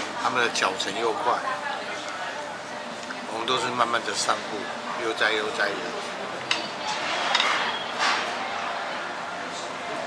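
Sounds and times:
restaurant background hum: 0.0 - 10.0
dishes and cutlery clinking: 6.5 - 8.4.

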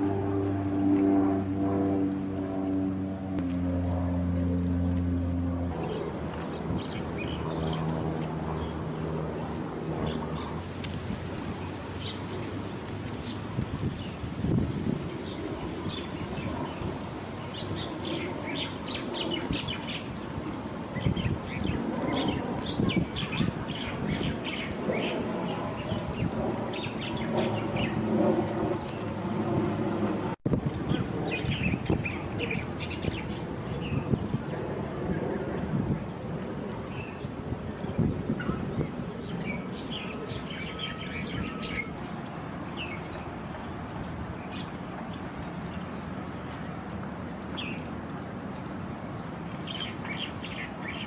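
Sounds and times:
low outdoor rumble: 0.0 - 49.6
small birds chirping: 30.8 - 34.2, 49.0 - 51.0.

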